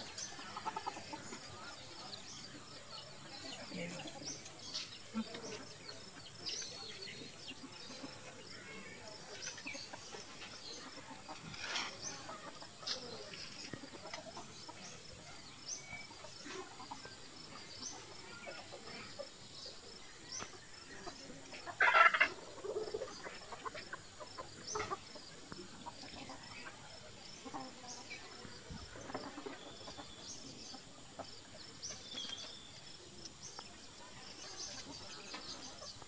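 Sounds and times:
chickens clucking: 0.0s - 36.0s.

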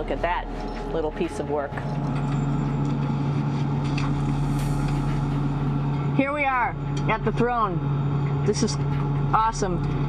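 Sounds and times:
cabin fans and equipment droning: 0.0s - 10.0s.

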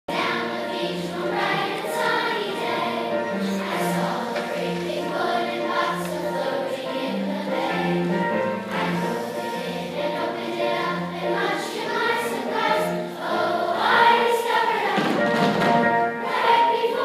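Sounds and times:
children's choir singing: 0.1s - 17.0s.

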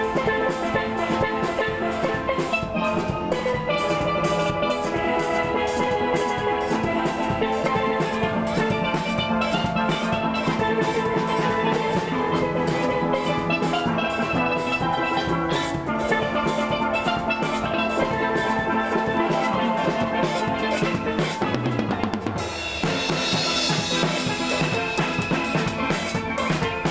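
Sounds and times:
drum accompaniment: 0.0s - 26.9s
steelpans ringing notes: 0.0s - 26.9s.

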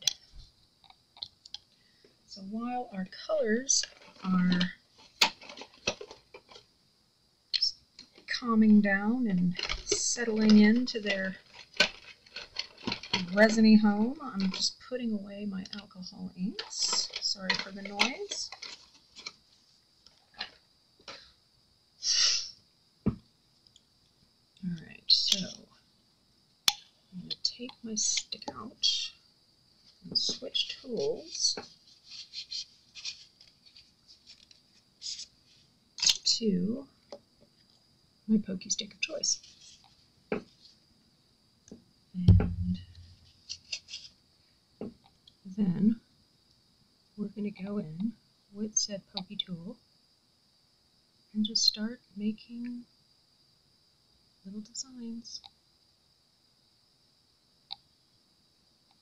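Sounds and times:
tools scratching and rustling: 3.8s - 6.6s, 9.5s - 13.7s, 16.6s - 19.6s, 30.2s - 35.3s, 42.8s - 44.1s.

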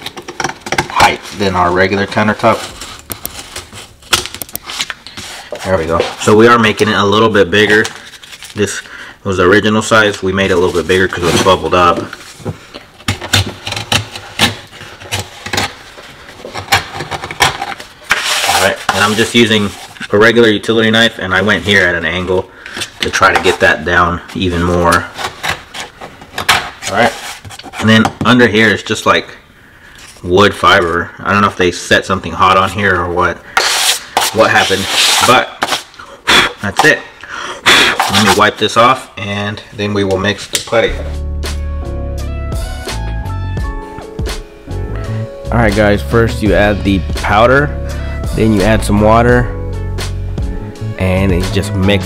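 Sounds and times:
laminate cracking and snapping: 0.0s - 1.2s, 4.0s - 5.0s.

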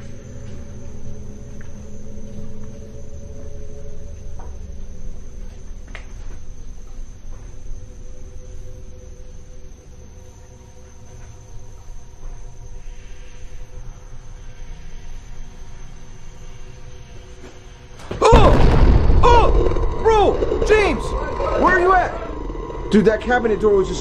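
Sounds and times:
faint steady hum: 0.0s - 24.0s
man yelling: 18.2s - 21.0s
low rumbling: 18.2s - 24.0s.

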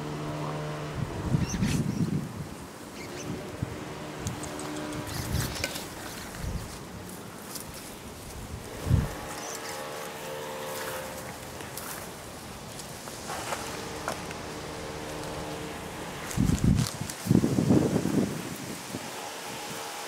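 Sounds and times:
dry grass rustling and crackling: 0.2s - 20.0s.

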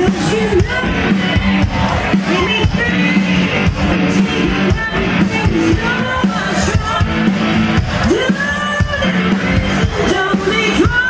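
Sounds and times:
live band music through pa: 0.0s - 11.0s.

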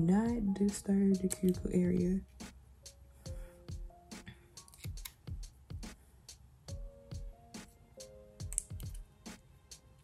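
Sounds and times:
background music with steady beat: 0.0s - 10.0s
scissors snipping plastic: 4.6s - 5.2s.

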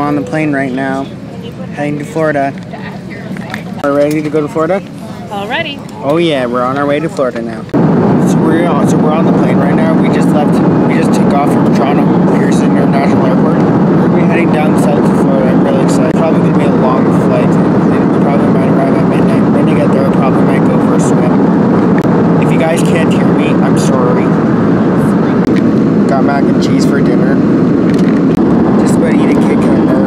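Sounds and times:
faint voices: 0.0s - 27.5s, 28.6s - 30.0s
jet cabin engine noise: 0.0s - 30.0s.

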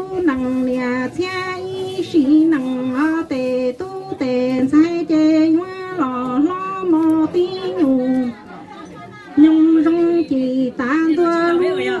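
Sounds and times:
woman singing into a microphone: 0.0s - 8.5s, 9.2s - 12.0s.

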